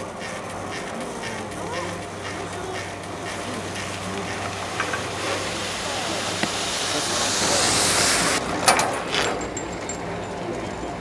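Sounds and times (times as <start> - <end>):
chairlift steady hiss: 0.0 - 8.4
chairlift sharp clacks: 0.0 - 9.2.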